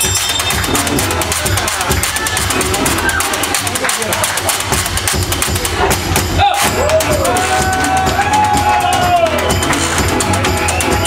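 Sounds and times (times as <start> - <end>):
washboard scraped in fast rhythm: 0.0 - 8.0.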